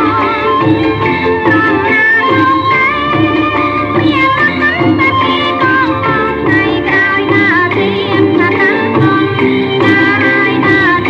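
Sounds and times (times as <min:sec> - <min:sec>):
band accompaniment: 0:00.0 - 0:11.0.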